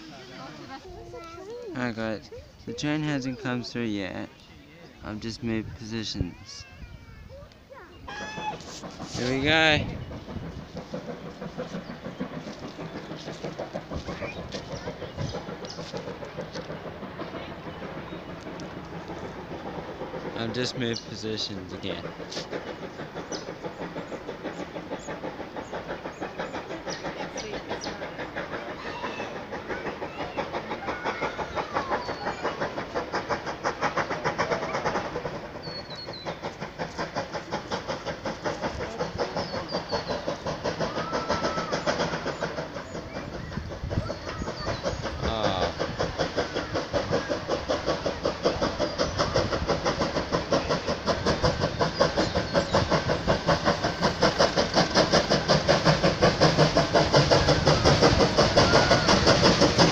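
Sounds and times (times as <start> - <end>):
steam locomotive exhaust beating: 0.0 - 59.9.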